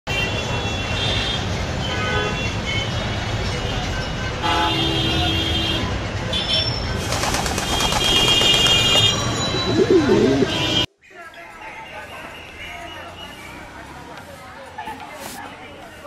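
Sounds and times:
rumble of vehicles: 0.1 - 10.9, 11.6 - 16.0
vehicle horn toots: 4.4 - 6.8, 8.0 - 10.9.

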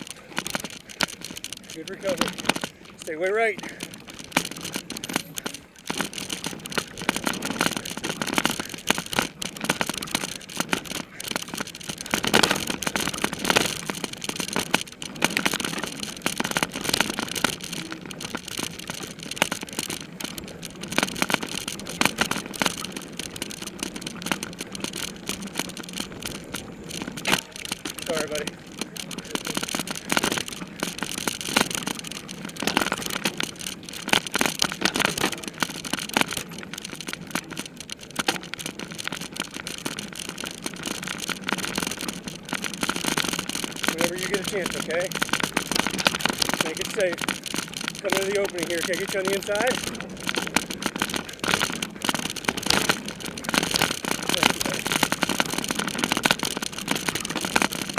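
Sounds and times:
bike rattling and knocking: 0.0 - 57.9.

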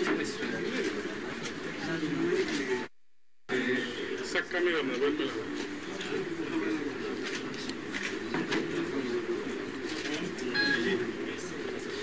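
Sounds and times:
crowd chatter indoors: 0.0 - 2.9, 3.5 - 12.0.

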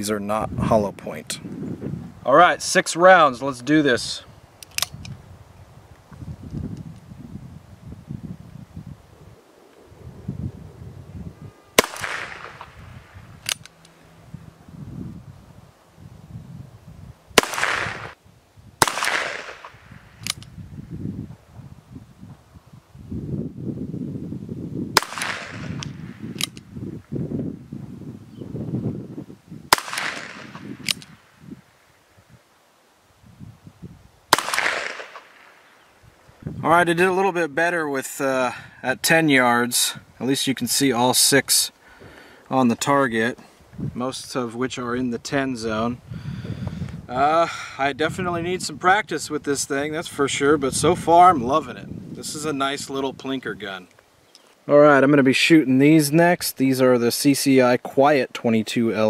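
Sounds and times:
sharp clicks: 4.6 - 5.2, 13.4 - 14.0, 18.8 - 20.6, 25.0 - 26.7, 29.7 - 31.2
revolver shots: 11.8 - 12.9, 29.7 - 30.8, 34.3 - 35.5.

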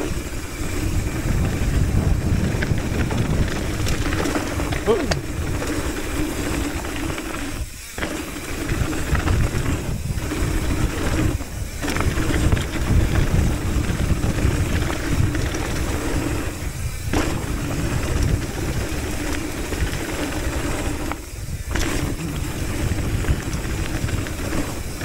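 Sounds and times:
wind on microphone: 0.0 - 7.7, 8.3 - 25.0
tyres rolling over gravel: 0.0 - 25.0.

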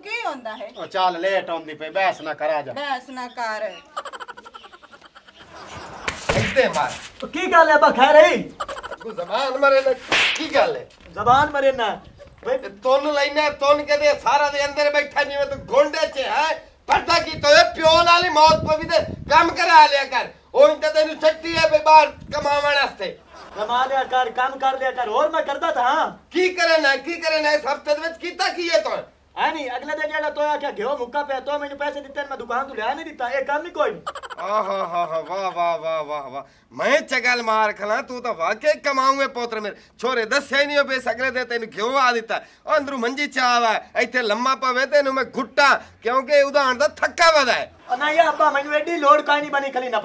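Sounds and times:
sharp smack: 6.0 - 7.1, 10.0 - 10.7
people talking: 6.1 - 50.0.

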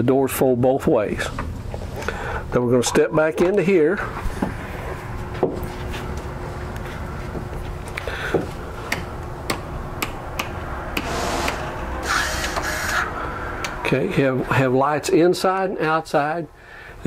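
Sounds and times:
low steady rumble: 3.8 - 16.7
footsteps: 4.1 - 8.6.

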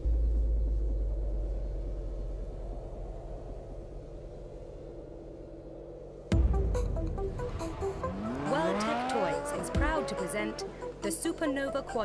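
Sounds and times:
music: 6.3 - 12.0
sports car engine revving: 6.3 - 12.0.

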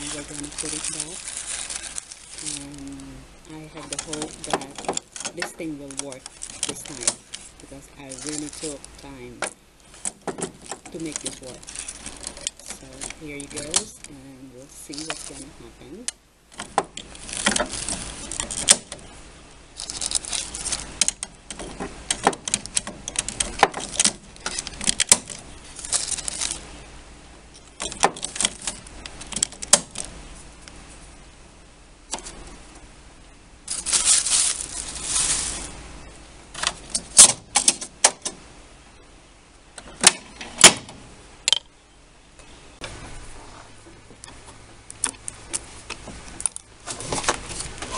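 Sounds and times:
plastic rustle: 0.0 - 31.2, 32.1 - 32.9, 33.6 - 38.4, 42.9 - 47.9.

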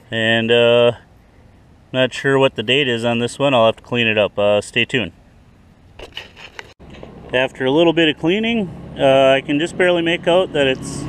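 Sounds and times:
highway traffic hum: 0.0 - 11.0.

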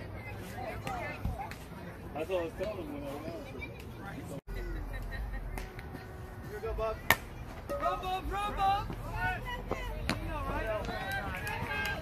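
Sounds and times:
men calling and talking: 0.0 - 12.0.

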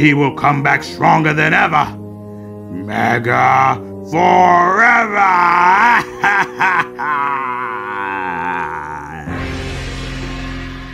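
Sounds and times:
man's long wavering cry: 3.5 - 9.4.

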